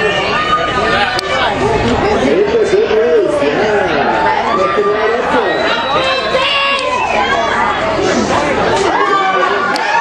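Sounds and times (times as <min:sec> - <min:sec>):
overlapping chatter of spectators: 0:00.0 - 0:10.0.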